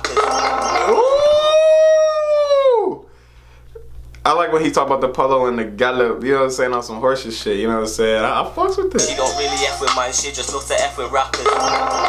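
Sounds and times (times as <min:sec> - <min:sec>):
man's falsetto ooh: 0:00.4 - 0:03.0.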